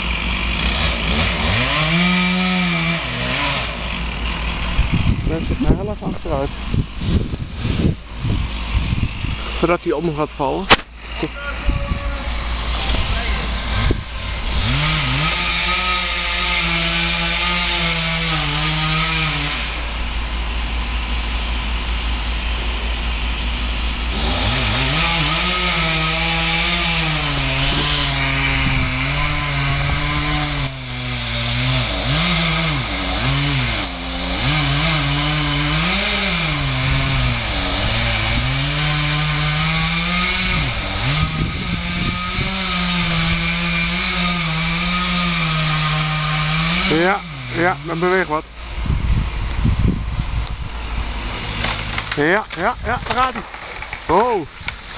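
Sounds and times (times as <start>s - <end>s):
chainsaw cutting tree trunk: 0.0s - 54.9s.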